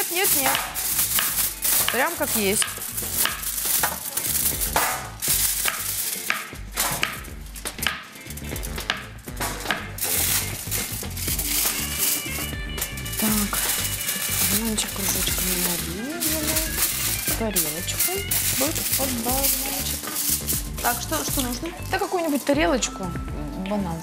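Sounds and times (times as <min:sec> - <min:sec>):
background music: 0:00.0 - 0:24.0.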